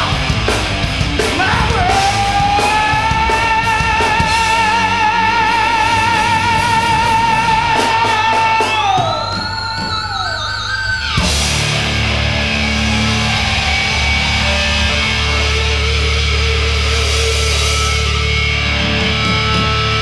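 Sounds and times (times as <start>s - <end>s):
electric guitar lead line: 0.0s - 20.0s
rock band playing: 0.0s - 20.0s.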